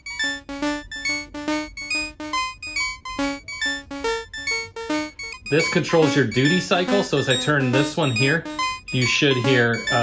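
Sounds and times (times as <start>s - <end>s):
synthesizer step sequence with echoes: 0.0s - 10.0s.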